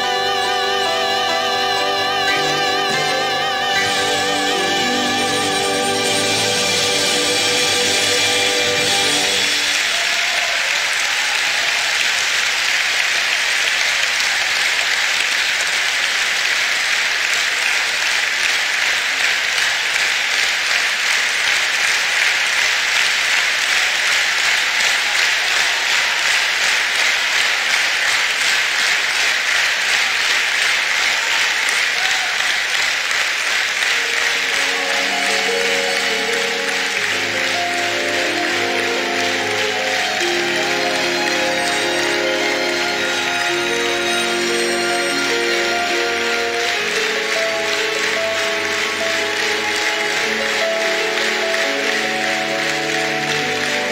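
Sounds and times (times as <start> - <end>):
instrumental music: 0.0 - 9.8, 33.9 - 53.9
audience applauding: 0.0 - 53.9.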